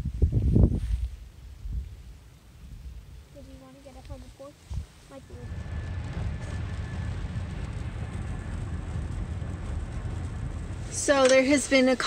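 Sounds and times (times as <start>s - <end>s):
road rumble inside car: 5.2s - 12.0s.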